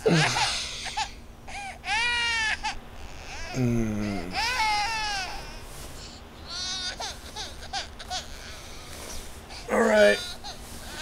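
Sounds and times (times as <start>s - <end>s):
baby crying: 0.1s - 8.9s, 9.6s - 11.0s.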